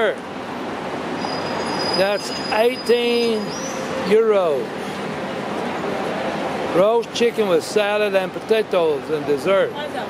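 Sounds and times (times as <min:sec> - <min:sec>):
passing vehicles rushing: 0:00.0 - 0:10.0.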